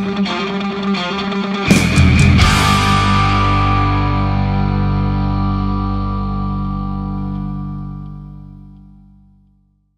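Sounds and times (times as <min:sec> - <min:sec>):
distorted electric guitar chord: 0:00.0 - 0:09.4
bass guitar: 0:00.0 - 0:09.9.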